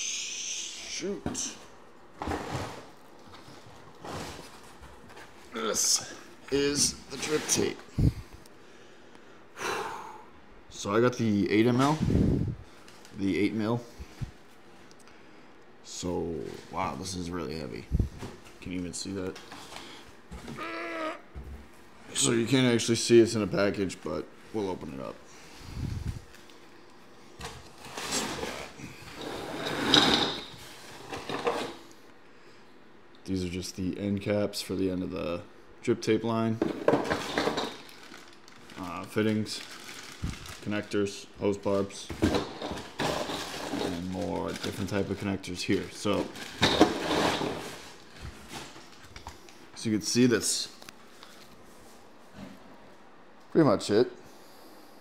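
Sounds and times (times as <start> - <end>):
packaging rustling: 37.0 - 41.0, 42.3 - 49.4.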